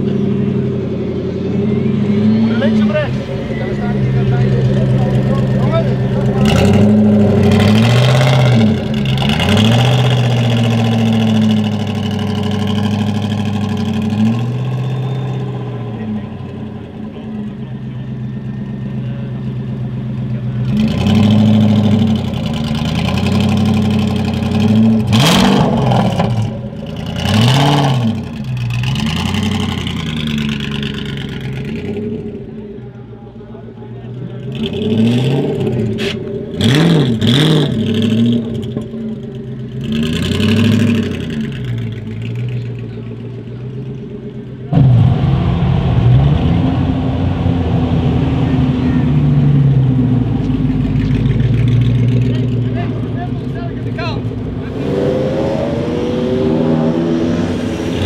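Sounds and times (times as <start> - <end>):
engine idling and revving: 0.0 - 58.0.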